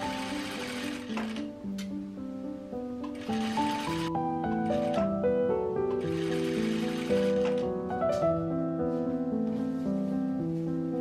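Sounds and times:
sewing machine stitching: 0.0s - 1.5s, 3.0s - 5.1s, 6.0s - 7.7s
soft piano music: 0.0s - 11.0s.

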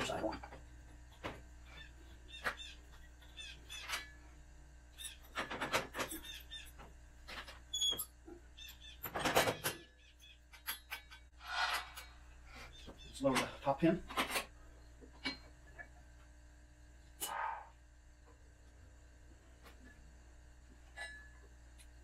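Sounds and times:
short metal squeaks: 7.6s - 11.9s.

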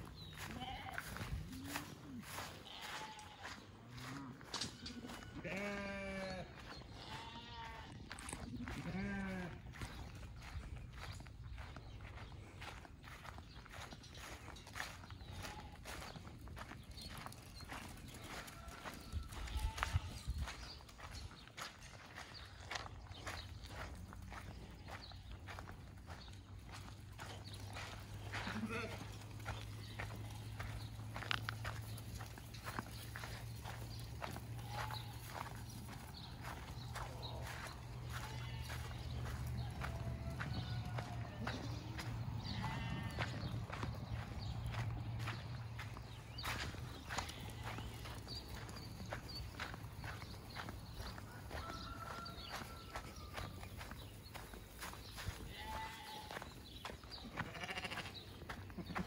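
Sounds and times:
hooves clicking on dirt: 0.0s - 59.0s
sheep bleating: 0.4s - 4.4s, 5.1s - 10.0s, 19.3s - 20.3s, 28.2s - 31.8s, 37.0s - 45.4s, 46.4s - 48.3s, 55.2s - 56.5s, 57.3s - 59.0s.

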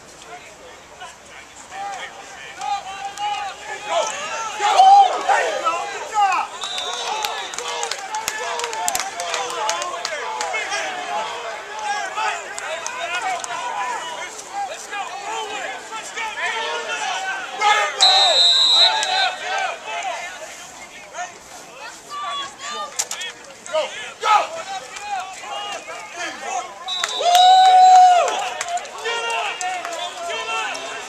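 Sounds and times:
men talking and shouting: 0.0s - 31.0s
whistle blast: 6.5s - 7.6s, 18.0s - 19.4s, 26.8s - 27.7s.

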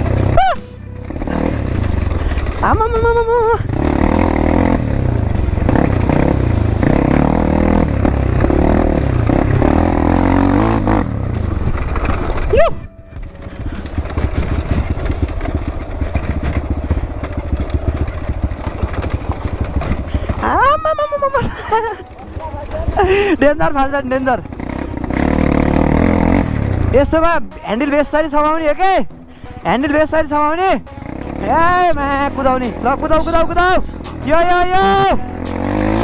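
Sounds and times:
clatter over rocks: 0.0s - 28.6s
dirt bike engine under throttle: 0.0s - 36.0s.

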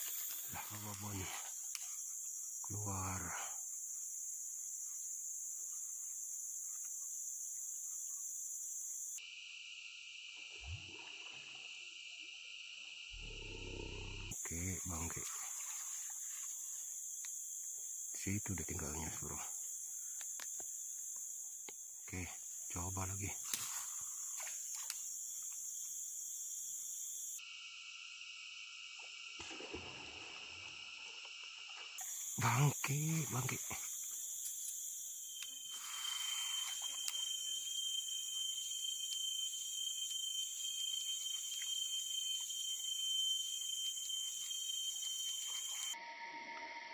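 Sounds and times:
insect chorus drone: 0.0s - 46.9s
low-pitched steady drone: 13.2s - 14.4s.

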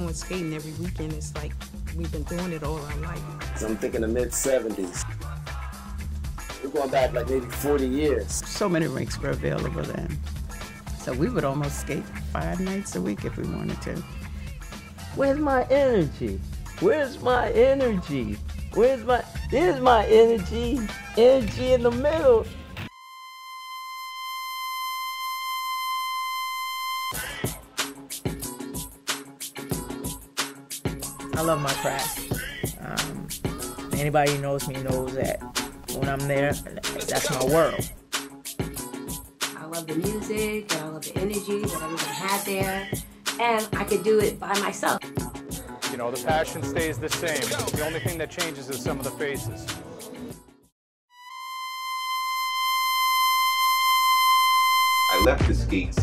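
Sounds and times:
steady high electronic tone: 22.9s - 27.2s, 51.2s - 55.4s.

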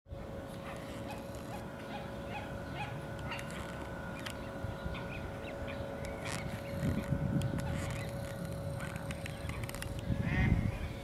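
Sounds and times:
faint steady hum: 0.1s - 11.0s.

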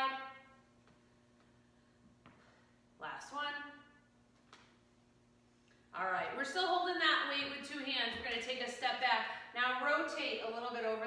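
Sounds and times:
steady low hum: 0.0s - 11.0s
woman speaking: 3.0s - 4.0s, 6.0s - 11.0s.

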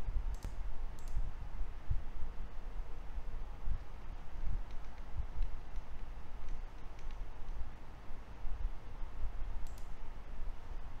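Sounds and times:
computer mouse clicks: 0.3s - 1.2s, 4.6s - 7.6s, 9.6s - 10.0s.

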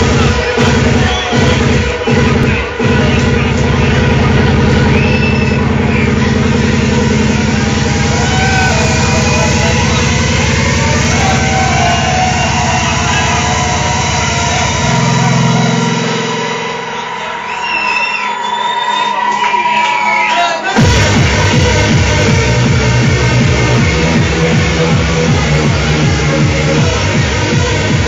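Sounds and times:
distorted hard dance music: 0.0s - 28.0s.

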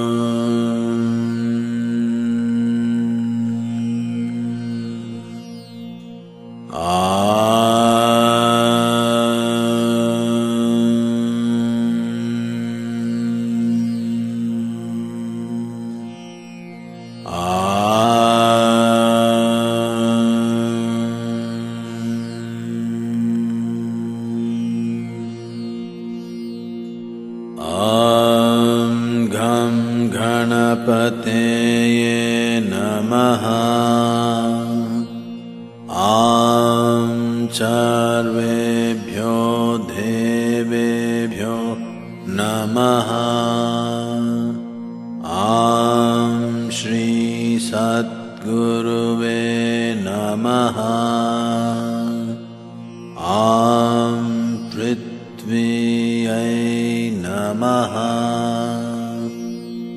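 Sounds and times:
person chanting melodically: 0.0s - 59.9s.

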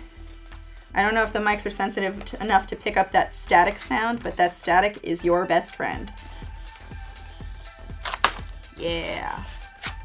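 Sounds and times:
paper backing peeling off vinyl: 6.6s - 10.0s.

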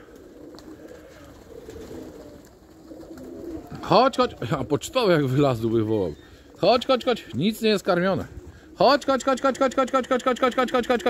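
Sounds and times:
pigeons cooing: 0.0s - 11.0s.

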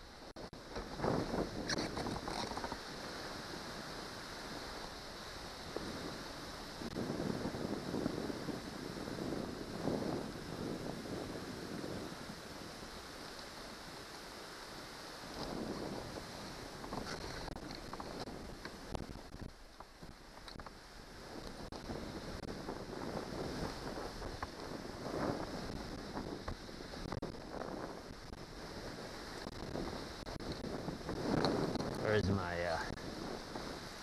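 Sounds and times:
wind gusts on microphone: 0.0s - 34.0s.

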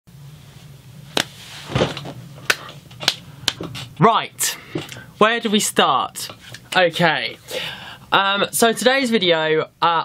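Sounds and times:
low steady hum: 0.1s - 10.0s.

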